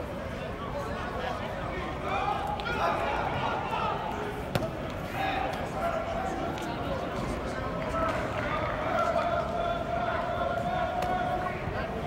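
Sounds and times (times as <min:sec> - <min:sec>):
chatter of voices indoors: 0:00.0 - 0:12.0
football slapping into hands: 0:04.5 - 0:05.0.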